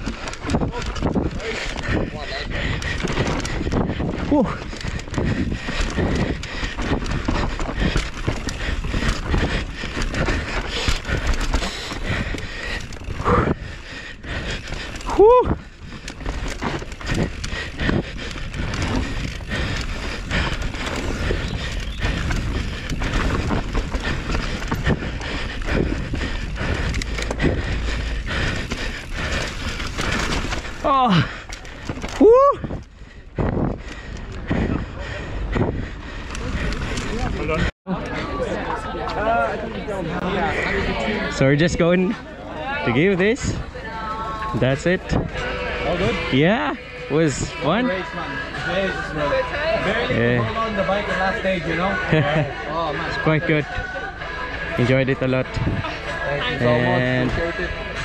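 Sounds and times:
bike rattling over bumps: 0:00.0 - 0:37.7
wind rumbling on microphone: 0:00.0 - 0:37.7, 0:44.5 - 0:45.5, 0:55.4 - 0:56.1
tyres on dirt: 0:00.0 - 0:58.0.

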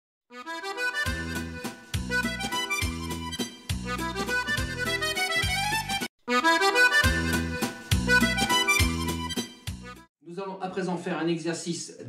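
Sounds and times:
accordion music: 0:00.3 - 0:10.1.

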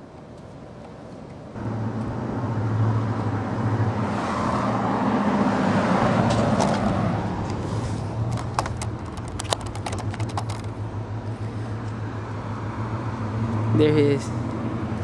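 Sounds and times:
vehicle engine running: 0:01.6 - 0:04.1, 0:06.6 - 0:15.0.

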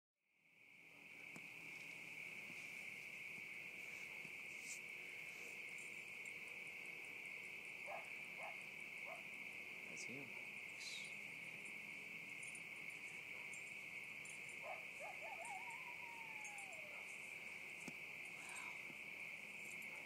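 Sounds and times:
insects droning: 0:00.4 - 0:20.0.

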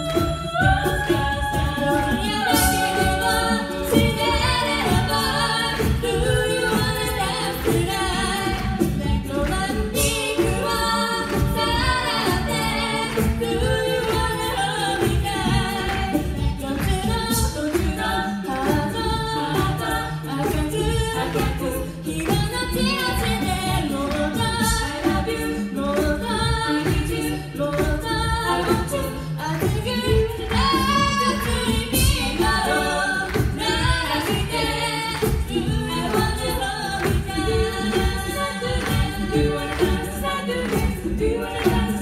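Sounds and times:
women singing a cappella harmony: 0:00.0 - 0:42.0.

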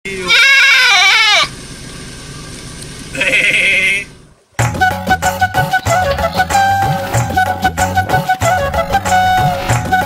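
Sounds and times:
goat bleating: 0:00.1 - 0:01.5, 0:03.2 - 0:04.1.

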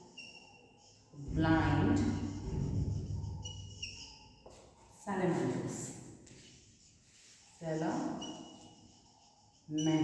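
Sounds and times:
whiteboard marker squeaking: 0:00.0 - 0:05.5, 0:06.2 - 0:10.0.

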